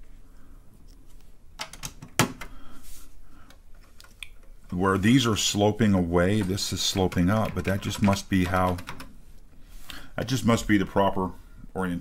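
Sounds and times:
keyboard keycaps clicking: 6.3 - 9.1.

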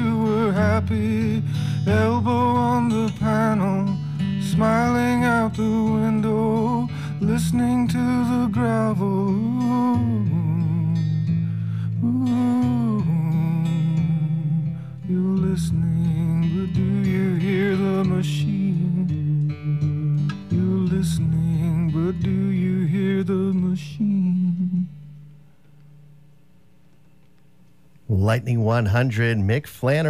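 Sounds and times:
man singing wordless phrases: 0.0 - 11.2, 12.0 - 24.9, 28.1 - 30.0
acoustic guitar chords: 0.0 - 30.0.

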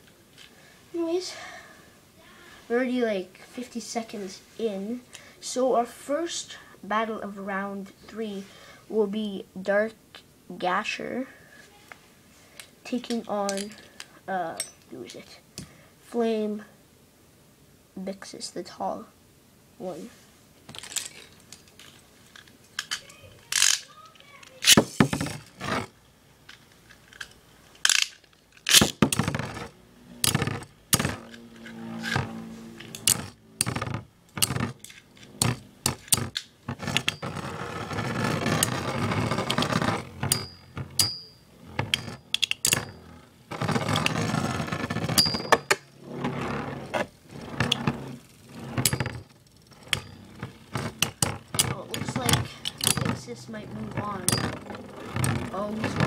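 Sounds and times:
spinning tops rattling and scraping: 12.9 - 14.1, 20.7 - 56.0.

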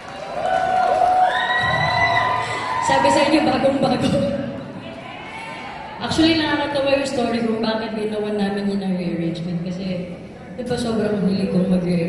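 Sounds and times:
concert crowd cheering: 0.0 - 6.1
fans screaming: 0.1 - 3.7.

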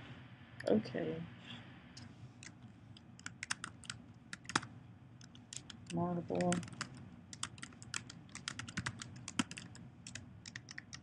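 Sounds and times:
computer keyboard typing: 2.4 - 11.0.

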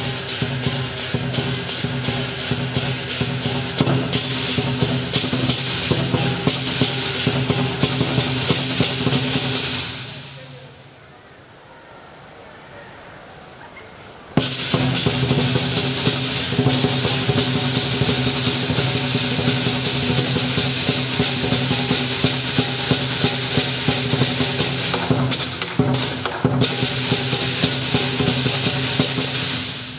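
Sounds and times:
drum cymbals and gong rhythm: 0.0 - 10.5, 14.4 - 29.9.

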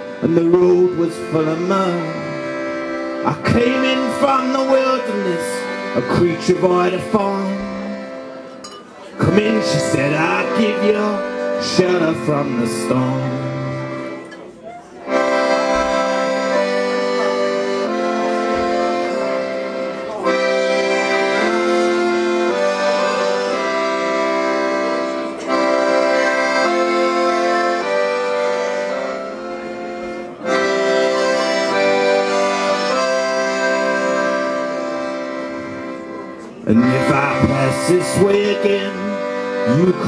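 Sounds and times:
accordion chords: 0.0 - 40.0.

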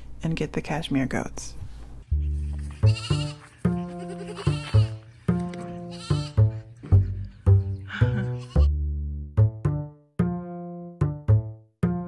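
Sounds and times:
music with plucked beat: 2.1 - 12.0
goat kids bleating: 2.6 - 6.6, 8.2 - 8.7.

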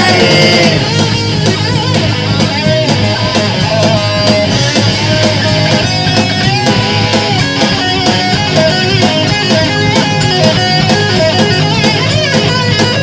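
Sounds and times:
bass guitar: 0.0 - 13.0
distorted electric guitar lead: 0.0 - 13.0
fast drums and cymbals: 0.0 - 13.0.

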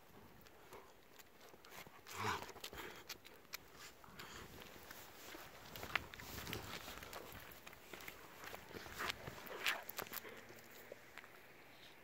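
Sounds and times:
paw scuffs and clicks: 0.1 - 11.5.

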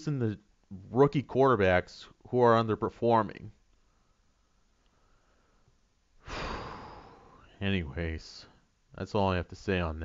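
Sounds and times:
man sighing: 6.2 - 7.6.

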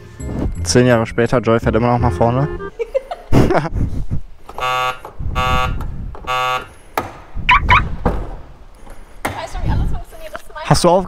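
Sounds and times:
car warning buzzer beeps: 4.6 - 6.8.

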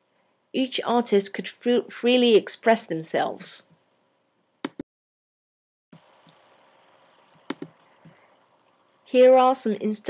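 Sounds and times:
faint steady hiss: 0.0 - 4.8, 6.0 - 10.0.

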